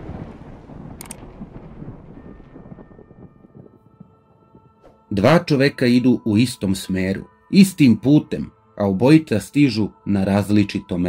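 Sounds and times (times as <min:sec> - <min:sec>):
deep rumble of a boom: 0:00.0 - 0:05.0.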